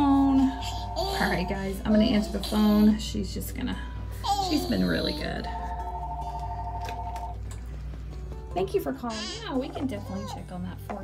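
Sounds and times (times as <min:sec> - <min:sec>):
two-tone telephone ringing: 0:05.5 - 0:07.4.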